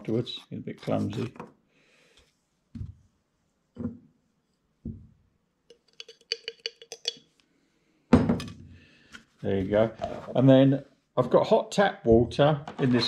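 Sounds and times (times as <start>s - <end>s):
light clinks on glass: 5.7s - 7.2s.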